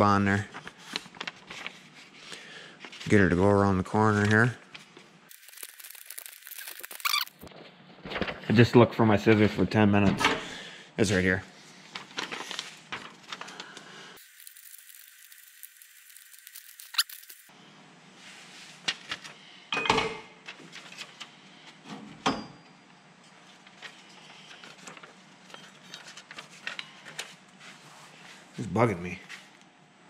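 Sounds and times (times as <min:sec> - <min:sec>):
paper rustling: 0:00.6 - 0:03.2, 0:04.0 - 0:08.4, 0:11.9 - 0:17.5.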